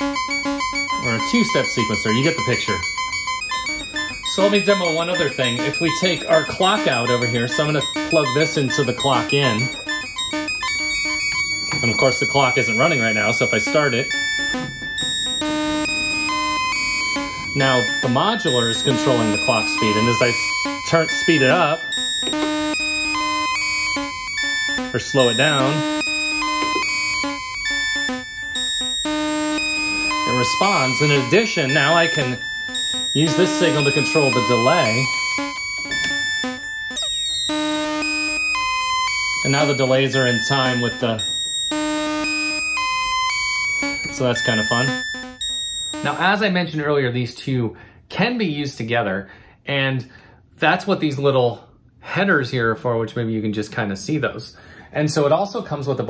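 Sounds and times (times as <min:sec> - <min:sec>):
synth tone stepping through pitches: 0:00.0 - 0:46.4.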